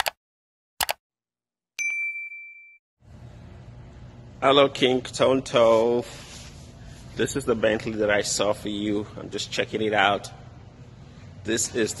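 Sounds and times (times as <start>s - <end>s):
bell-like ding: 1.8s - 2.8s.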